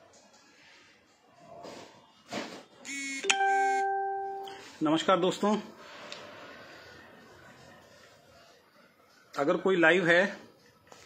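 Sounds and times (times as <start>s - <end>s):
brief pitched tone: 2.9s - 4.6s
electronic ding-dong chime: 3.2s - 4.7s.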